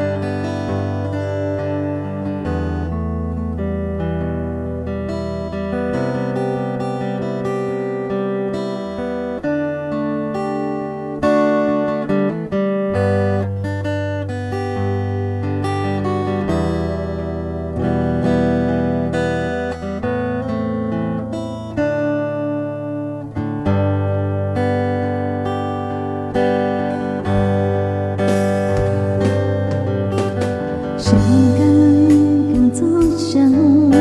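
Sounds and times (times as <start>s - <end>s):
acoustic guitar playing chords: 0.0s - 34.0s.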